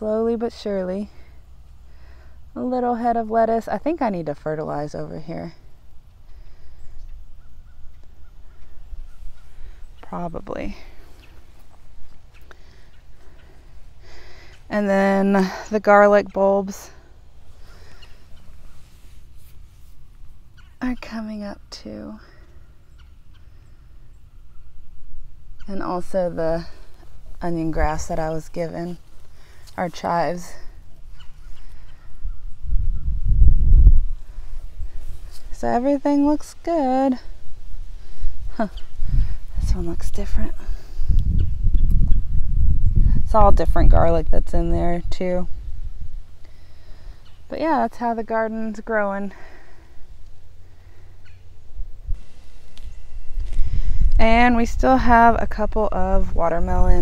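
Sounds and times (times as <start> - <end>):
low microphone rumble: 24.0 - 46.4, 51.5 - 57.0
bird calling faintly: 29.2 - 33.2.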